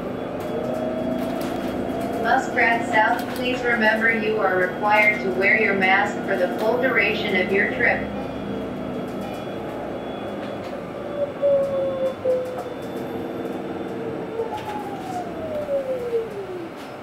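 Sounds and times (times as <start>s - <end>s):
road and cabin rattle: 0.2s - 17.0s.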